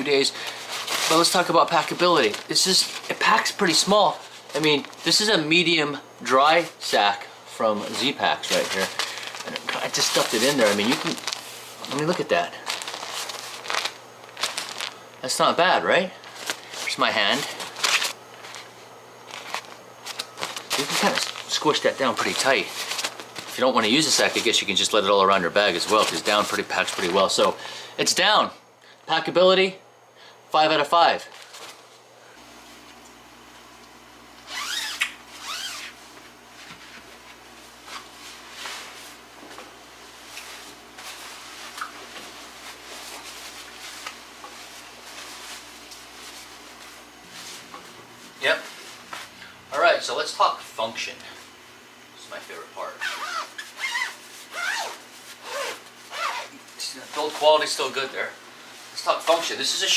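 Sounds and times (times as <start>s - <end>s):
dry sack crinkling: 0.0s - 5.5s, 7.7s - 27.7s
steady low hum: 0.0s - 59.9s
sleeping bag fabric rustling: 7.9s - 15.0s, 53.0s - 57.7s.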